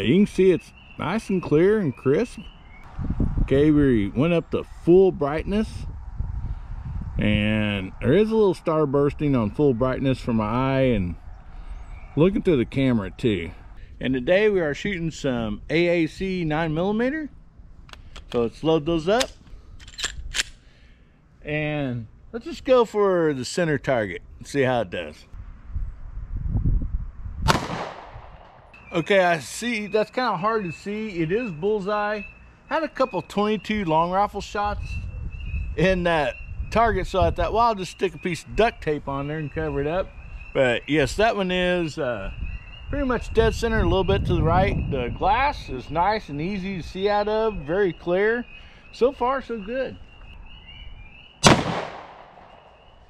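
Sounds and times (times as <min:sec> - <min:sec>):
pistol shot with echo: 0:27.4 - 0:28.7, 0:51.4 - 0:52.8.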